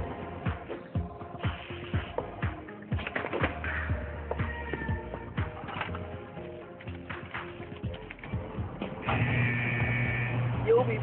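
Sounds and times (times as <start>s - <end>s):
mechanical buzz with low hum: 9.0s - 11.0s.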